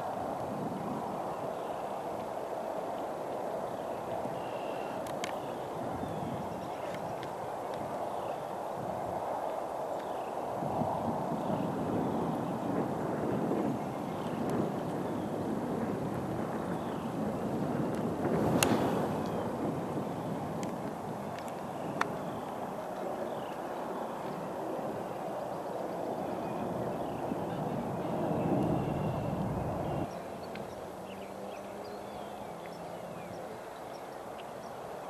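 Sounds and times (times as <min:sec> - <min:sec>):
wind noise on microphone: 0:00.0 - 0:35.0.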